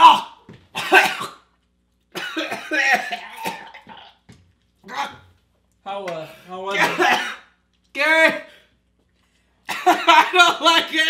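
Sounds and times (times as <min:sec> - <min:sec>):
man coughing and sputtering: 0:00.1 - 0:05.2, 0:06.7 - 0:07.6, 0:09.6 - 0:11.0.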